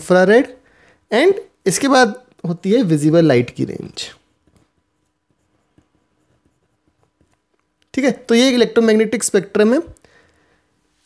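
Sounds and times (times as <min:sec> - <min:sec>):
pen scratching on paper: 0:04.2 - 0:07.6.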